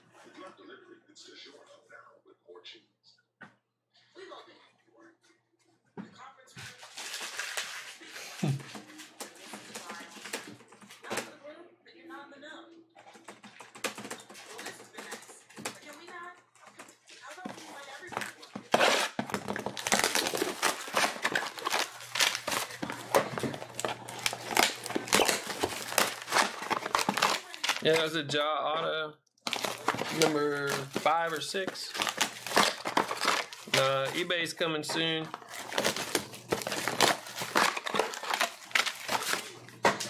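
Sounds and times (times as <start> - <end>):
plastic wrap crinkling and tearing: 6.7 - 11.1, 17.4 - 28.2, 29.4 - 40.0.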